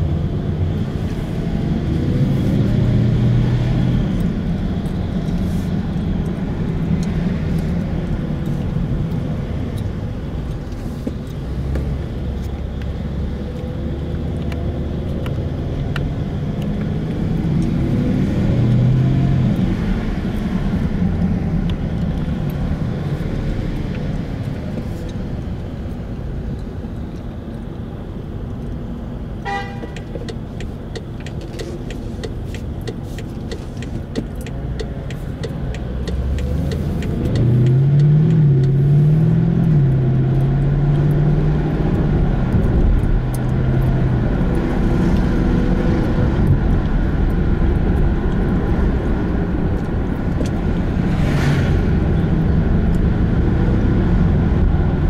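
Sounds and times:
car engine accelerating: 0:00.0 - 0:27.8, 0:30.6 - 0:55.0
road noise inside car: 0:00.0 - 0:55.0.

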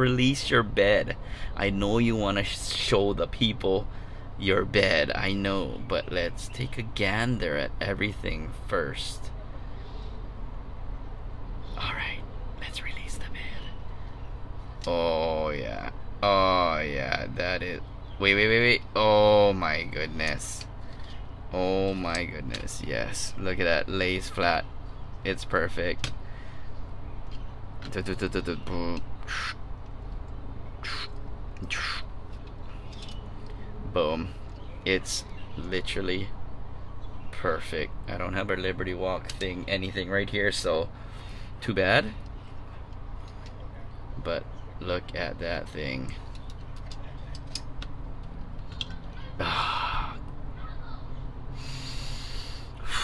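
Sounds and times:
steady low hum: 0:00.0 - 0:53.0
man exhaling breathily: 0:49.4 - 0:50.2, 0:51.6 - 0:53.0
man's croaky exclamation: 0:49.4 - 0:50.3
short hissing sounds: 0:51.6 - 0:52.8.

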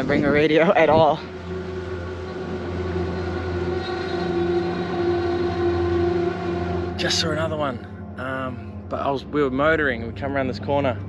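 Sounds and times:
outboard motor droning: 0:00.0 - 0:11.0.

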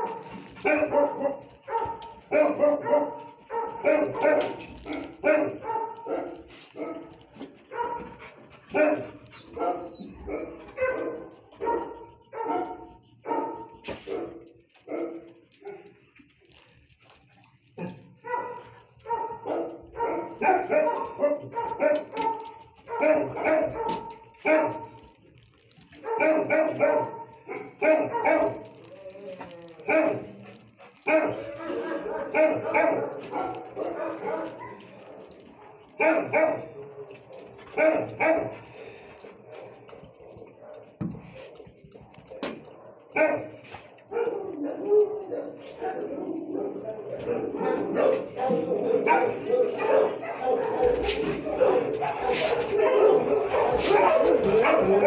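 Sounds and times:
dog barking: 0:00.0 - 0:16.0, 0:17.8 - 0:25.2, 0:26.0 - 0:28.9, 0:29.8 - 0:41.4, 0:42.2 - 0:55.0.

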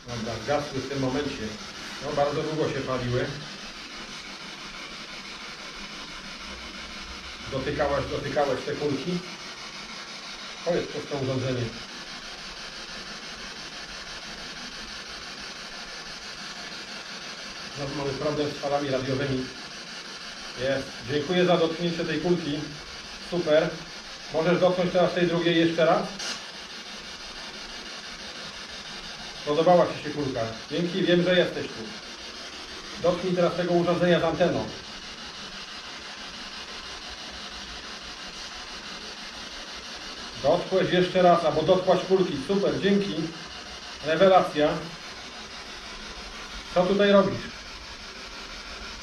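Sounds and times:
radio static sweeping frequencies: 0:00.0 - 0:05.2, 0:40.4 - 0:48.0
radio static hiss: 0:00.0 - 0:49.0.

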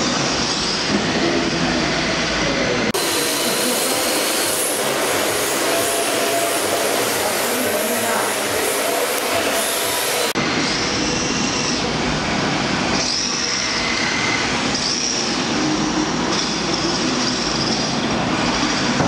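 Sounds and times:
tyres sliding hiss: 0:03.0 - 0:10.4.

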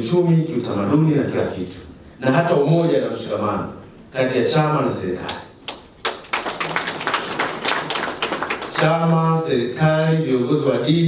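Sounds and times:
audience applauding: 0:05.7 - 0:09.2.

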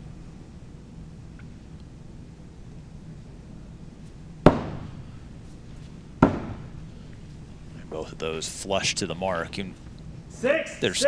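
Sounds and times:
axe striking wooden board: 0:04.4 - 0:05.0, 0:06.2 - 0:06.7.

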